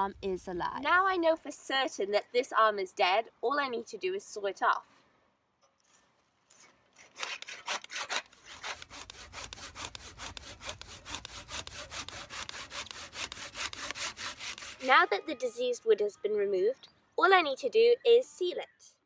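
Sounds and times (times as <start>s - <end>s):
hand saw rasping through wood: 7.0s - 15.0s.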